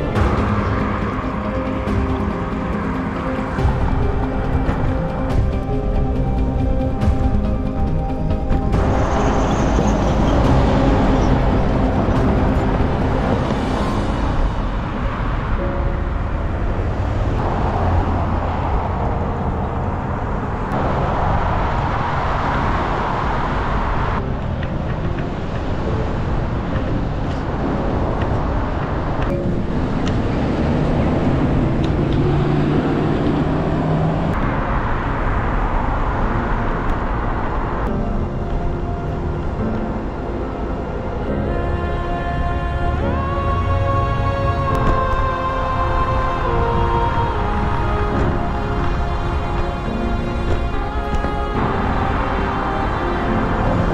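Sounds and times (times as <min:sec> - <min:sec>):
cars passing: 0:00.0 - 0:53.9
road traffic noise: 0:00.0 - 0:53.9
wind rush: 0:00.0 - 0:53.9.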